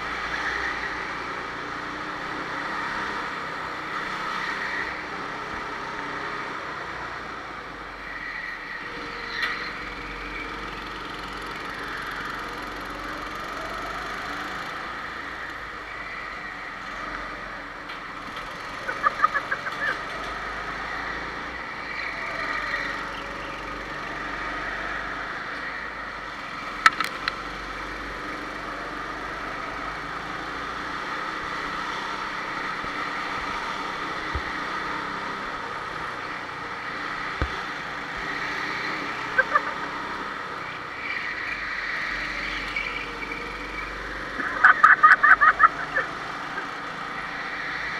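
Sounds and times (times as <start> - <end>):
go-kart engines revving: 0.0 - 47.9.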